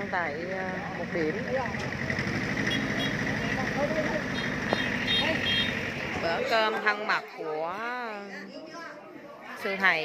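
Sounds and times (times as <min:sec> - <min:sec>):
tractor engine chugging: 0:00.0 - 0:06.4.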